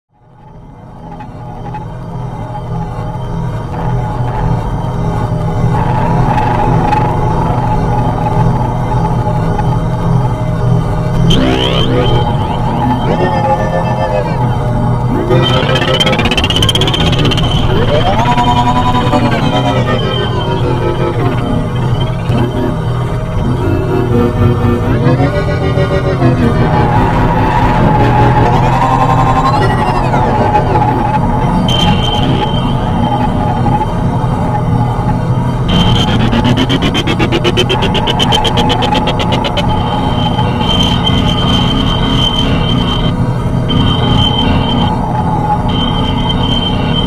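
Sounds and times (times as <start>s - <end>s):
low synth drone: 0.1s - 47.0s
glitchy stutter: 0.2s - 47.0s
synth tones gliding upward: 2.3s - 47.0s.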